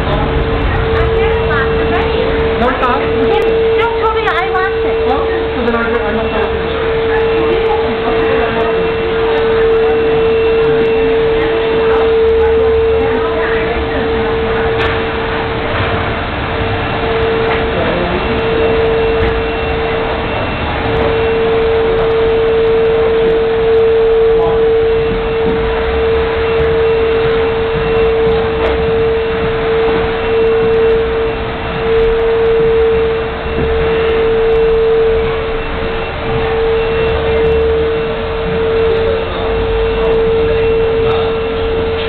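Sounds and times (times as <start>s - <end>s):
steady mid-pitched tone: 0.0s - 42.0s.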